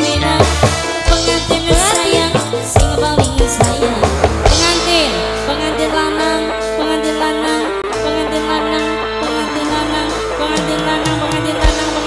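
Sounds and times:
live band instrumental music: 0.0s - 12.0s
melodic lead holding notes: 0.0s - 12.0s
steady bass: 0.0s - 12.0s.

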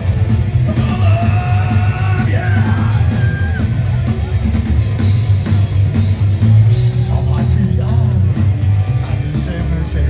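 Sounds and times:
drums: 0.0s - 10.0s
electric guitar: 0.0s - 10.0s
upright bass: 0.0s - 10.0s
person yelling vocals: 0.7s - 3.7s.

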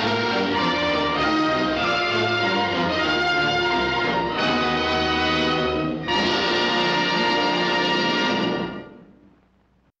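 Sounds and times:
orchestral film music: 0.0s - 9.2s.

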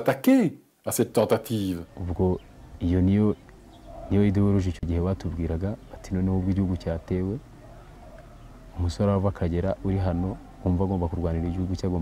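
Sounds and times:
man speaking: 0.0s - 3.4s, 4.1s - 7.5s, 8.8s - 12.0s.

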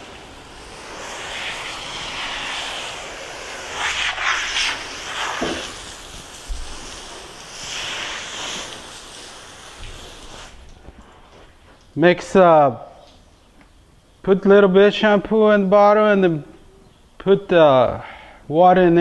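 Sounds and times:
hose spray hissing: 0.0s - 11.5s.

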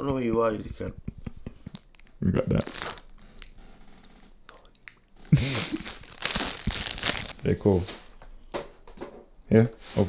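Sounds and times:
plastic packet crinkling: 2.6s - 3.1s, 5.4s - 7.6s.

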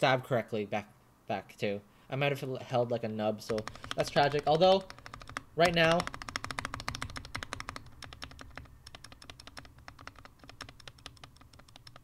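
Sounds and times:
keyboard key clicks: 3.5s - 12.0s.

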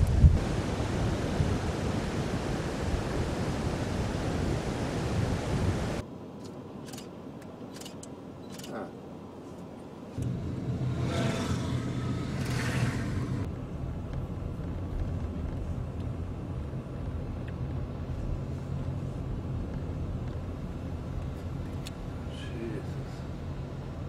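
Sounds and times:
car engine and road rumble: 6.4s - 24.0s.

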